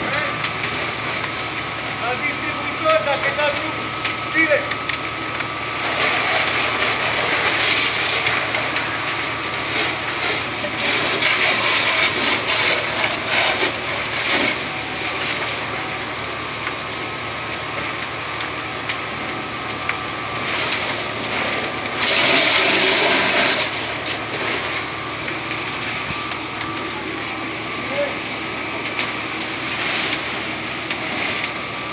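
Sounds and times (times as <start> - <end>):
fire crackling and popping: 0.0 - 31.9
steady fire noise: 0.0 - 31.9.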